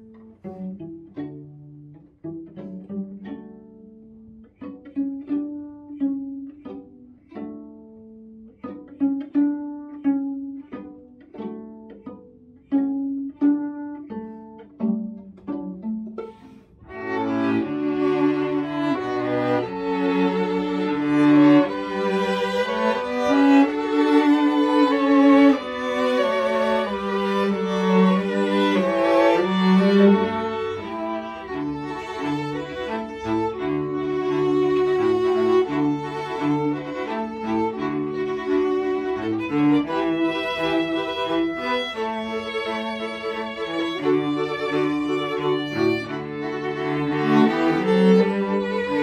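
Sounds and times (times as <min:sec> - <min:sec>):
cello low line: 0:00.0 - 0:49.0
string quartet playing: 0:00.0 - 0:49.0.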